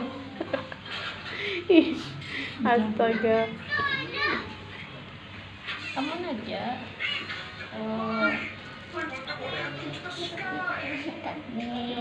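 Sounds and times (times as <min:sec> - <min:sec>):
young children's voices: 0:03.1 - 0:04.6.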